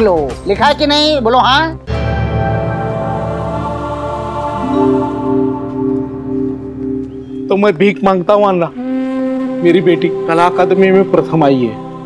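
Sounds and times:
soft low drone: 0:01.9 - 0:11.0.

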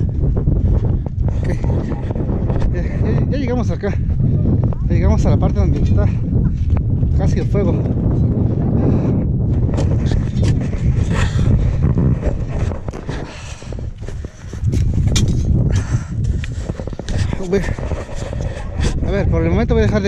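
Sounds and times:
wind rumbling on microphone: 0:00.0 - 0:20.0
footsteps crunching over ash: 0:09.5 - 0:18.8.

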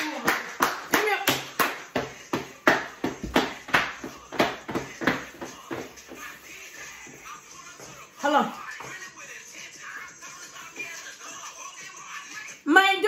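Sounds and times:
hand claps in fast rhythm: 0:00.0 - 0:06.3
faint music: 0:00.0 - 0:13.0.

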